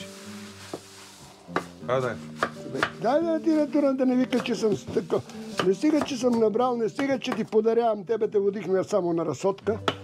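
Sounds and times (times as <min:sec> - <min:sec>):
knife knocking on chopping board: 0:04.2 - 0:06.3.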